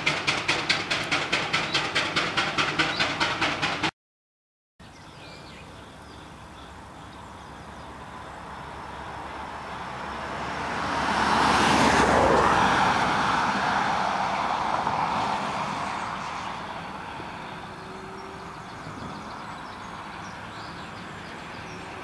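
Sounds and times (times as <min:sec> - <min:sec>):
van passing by: 0:06.4 - 0:22.0.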